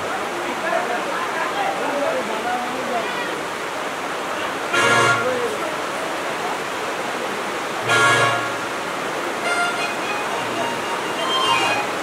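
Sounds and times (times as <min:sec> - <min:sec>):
steady hiss: 0:03.0 - 0:12.0.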